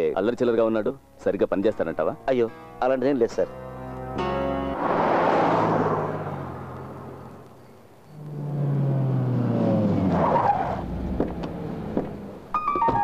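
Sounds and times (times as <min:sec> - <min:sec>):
car driving on street: 0:03.5 - 0:13.0
car engine with falling note: 0:08.1 - 0:13.0
tyre squeal: 0:10.0 - 0:10.9, 0:12.6 - 0:13.0.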